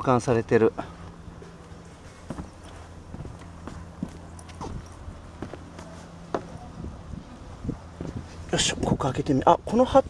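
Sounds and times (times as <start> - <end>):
low steady hum: 0.0 - 10.0
footsteps on boat deck: 1.1 - 7.0, 7.9 - 8.5.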